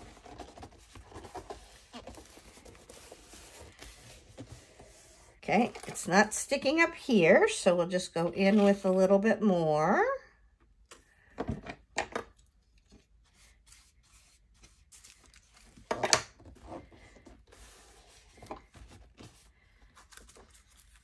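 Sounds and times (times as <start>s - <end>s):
paper rustling: 0.0s - 5.2s.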